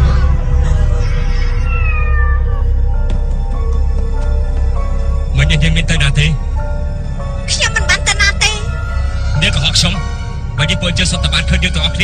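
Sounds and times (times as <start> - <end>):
cat meowing: 0.0 - 3.0
film music: 0.0 - 12.0.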